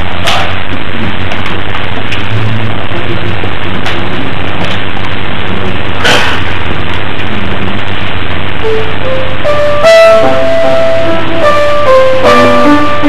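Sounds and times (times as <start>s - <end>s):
steady hiss and hum: 0.0s - 13.0s
grand piano notes and chords: 8.4s - 13.0s.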